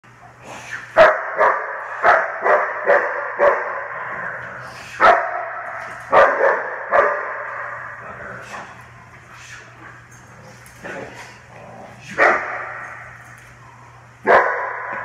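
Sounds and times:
steady low hum: 0.0s - 15.0s
dog barking with echo: 1.0s - 4.0s, 5.0s - 7.8s, 12.2s - 12.8s, 14.2s - 15.0s.

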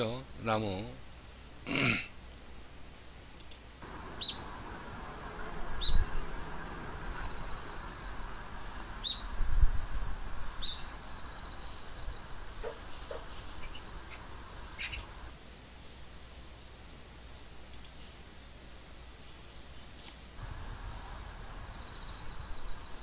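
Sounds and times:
steady hiss: 0.0s - 23.0s
short sharp bird calls: 4.0s - 4.5s, 9.0s - 9.3s, 10.6s - 15.2s.

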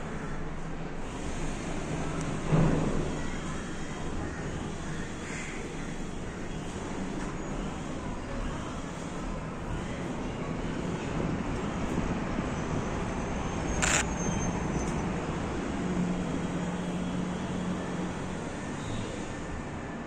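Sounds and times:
distant road traffic: 0.0s - 20.0s
sharp click: 13.8s - 14.1s.

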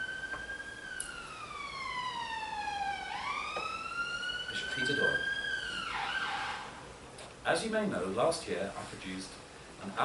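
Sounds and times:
emergency siren wailing: 0.0s - 6.9s.

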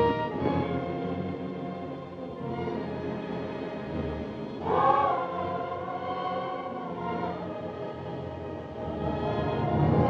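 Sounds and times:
orchestral score with wordless choir: 0.0s - 10.0s.

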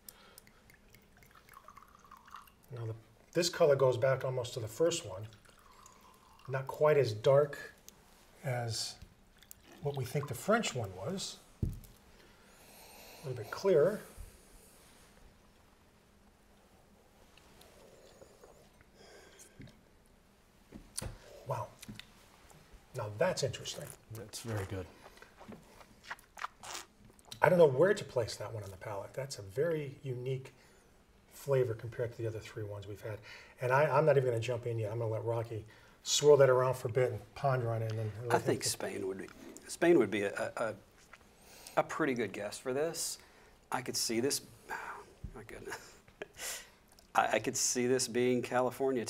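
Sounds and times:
wine trickling into glass: 0.3s - 3.7s, 5.0s - 7.1s.

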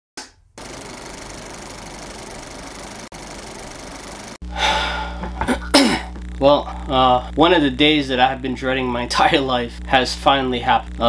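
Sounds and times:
film projector whirring clatter: 0.6s - 4.4s
low room hum: 1.9s - 11.0s
man sighing: 4.4s - 7.0s
man speaking: 6.4s - 11.0s.

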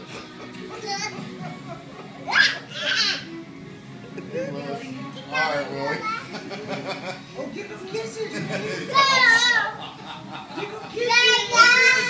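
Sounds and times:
music from a television: 0.0s - 12.0s
children squealing and shrieking: 2.2s - 3.3s.

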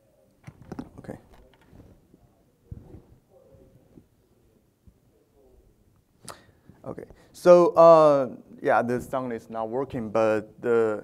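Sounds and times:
mouth clicks near microphone: 6.2s - 6.5s.

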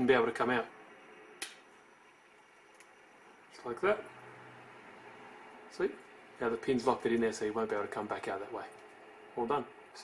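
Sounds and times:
sharp click: 1.4s - 1.7s.

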